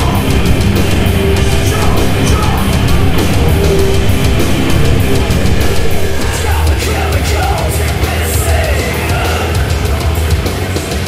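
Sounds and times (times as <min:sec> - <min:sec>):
heavy metal band playing: 0:00.0 - 0:11.0
pounding drum kit: 0:00.0 - 0:11.0.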